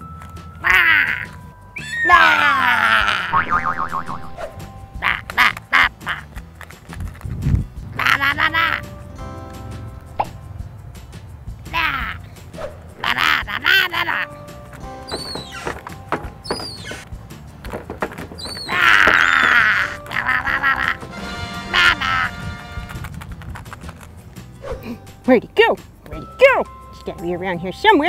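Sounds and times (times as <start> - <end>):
background music: 0.0 - 28.0
squawky cartoon voice gibberish: 3.0 - 4.4.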